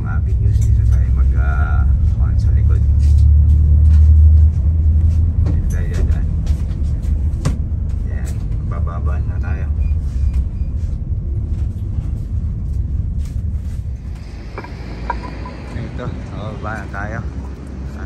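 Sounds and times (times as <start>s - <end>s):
bus engine and road rumble: 0.0s - 18.0s.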